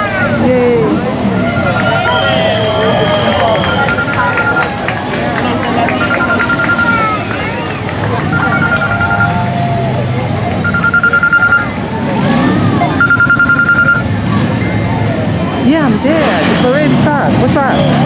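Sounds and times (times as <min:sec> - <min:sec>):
crowd chatter: 0:00.0 - 0:18.0
trilling bell-like ringing tone: 0:06.0 - 0:07.2, 0:08.3 - 0:09.4, 0:10.6 - 0:11.7, 0:13.0 - 0:14.8.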